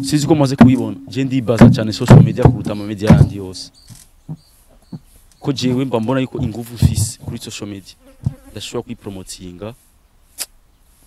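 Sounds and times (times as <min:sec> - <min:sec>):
man speaking quietly: 0:05.4 - 0:09.8.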